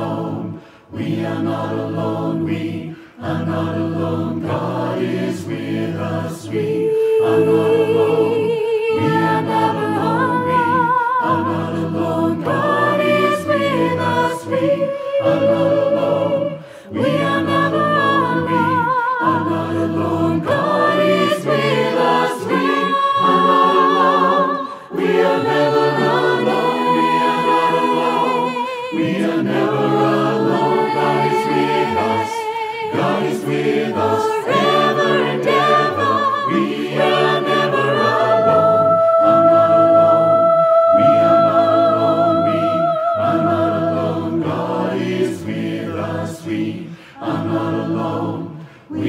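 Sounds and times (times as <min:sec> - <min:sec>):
choir singing in harmony: 0:00.0 - 0:49.0.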